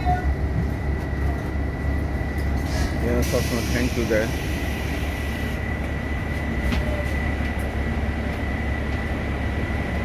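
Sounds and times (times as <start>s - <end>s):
bus engine and road rumble: 0.0s - 10.0s.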